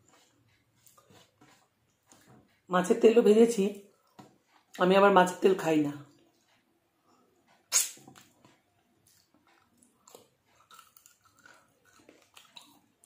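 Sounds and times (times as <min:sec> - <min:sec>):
wet chewing clicks: 0:00.0 - 0:02.7, 0:06.1 - 0:13.0
mouth smack: 0:07.7 - 0:08.3.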